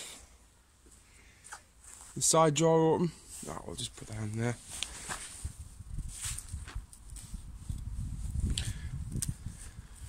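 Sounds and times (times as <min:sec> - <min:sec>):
tent fabric rustling and clicks: 0:04.3 - 0:09.4.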